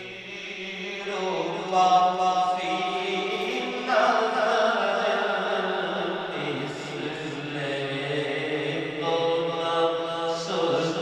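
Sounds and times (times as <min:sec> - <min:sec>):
person singing devotional chant: 0:00.0 - 0:11.0.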